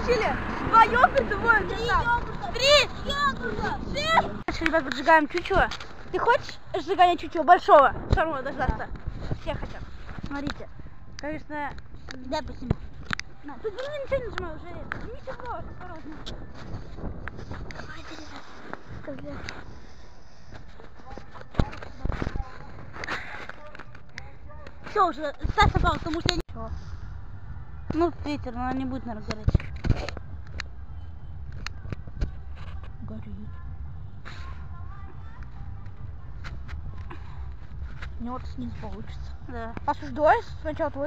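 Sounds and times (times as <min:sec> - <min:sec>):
wind rumbling on microphone: 0:00.0 - 0:23.1, 0:23.8 - 0:41.0.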